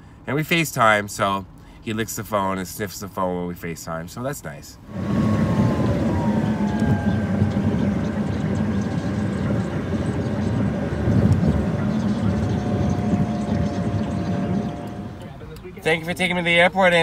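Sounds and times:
tyre and engine rumble: 0:04.8 - 0:17.0
faint falling whine: 0:04.9 - 0:15.7.

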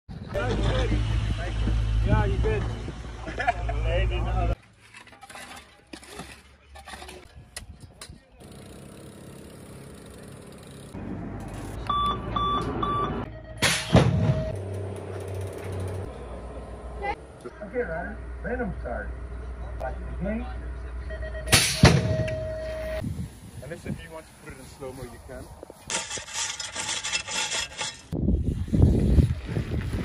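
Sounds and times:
electronic start beeps: 0:11.9 - 0:14.6
voices: 0:16.0 - 0:22.9
start gate dropping bang: 0:21.5 - 0:22.5.

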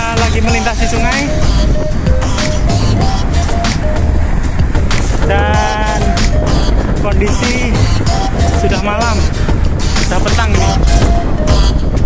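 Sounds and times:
background music with steady beat: 0:00.0 - 0:12.0
wind buffeting microphone: 0:00.0 - 0:12.0.

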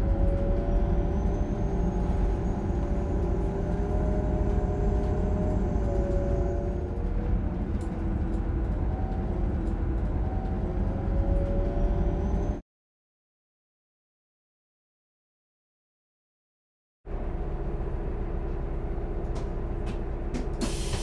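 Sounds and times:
bus engine and road rumble: 0:00.0 - 0:12.6, 0:17.1 - 0:21.0.

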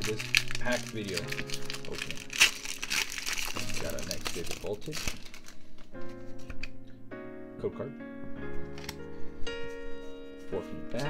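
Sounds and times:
foil wrapper crinkling and tearing: 0:00.0 - 0:06.7.

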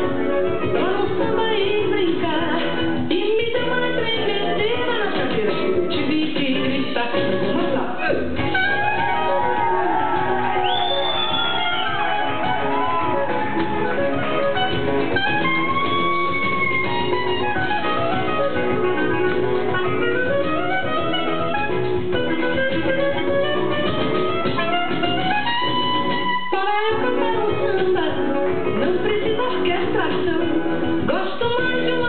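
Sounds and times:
samba music with plucked guitar: 0:00.0 - 0:32.0.

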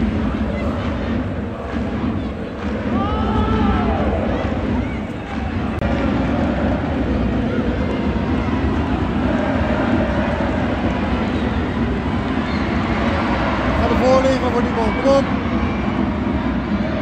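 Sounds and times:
stadium crowd din: 0:00.0 - 0:17.0.

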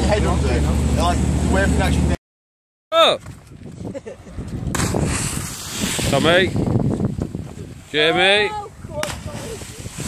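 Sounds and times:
water splash: 0:04.7 - 0:08.0, 0:08.9 - 0:10.0.

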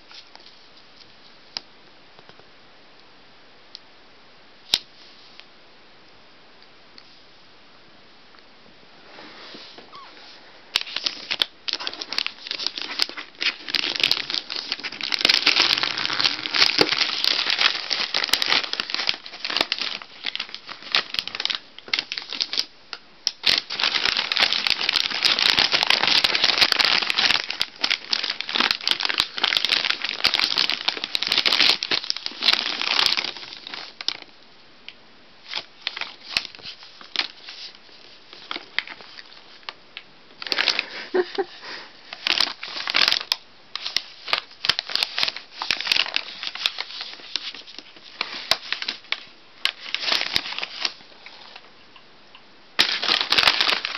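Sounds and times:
wrapping paper crinkling and tearing: 0:10.7 - 0:34.3, 0:35.4 - 0:39.7, 0:40.4 - 0:51.6, 0:52.8 - 0:53.9.

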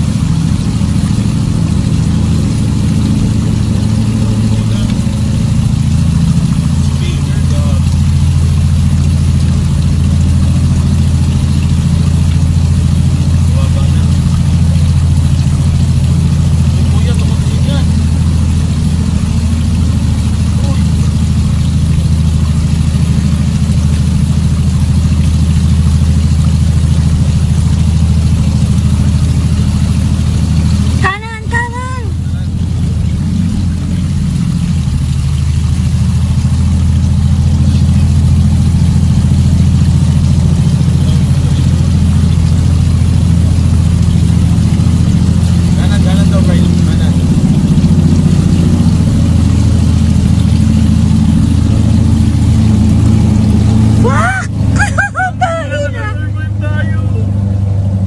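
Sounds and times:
engine running low drone: 0:00.0 - 0:58.0.

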